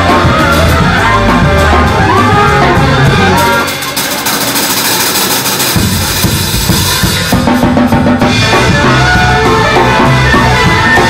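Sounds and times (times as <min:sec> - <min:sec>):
jazz band playing: 0:00.0 - 0:11.0
jazz drum kit playing: 0:00.0 - 0:11.0.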